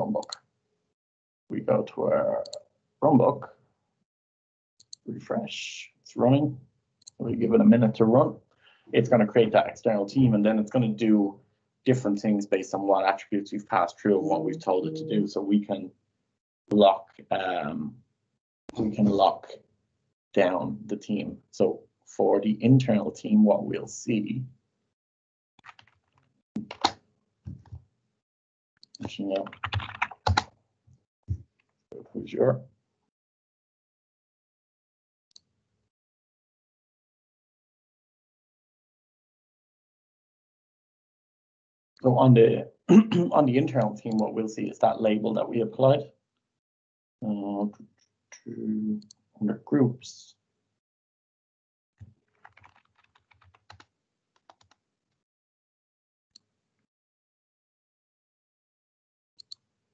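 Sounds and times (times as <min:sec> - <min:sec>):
computer keyboard typing: 0:29.1 - 0:30.5, 0:52.3 - 0:53.8, 0:54.4 - 0:54.8.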